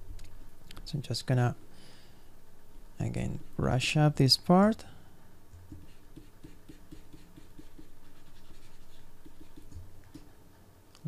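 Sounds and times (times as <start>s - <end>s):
stylus scratching on tablet: 5.7s - 9.8s.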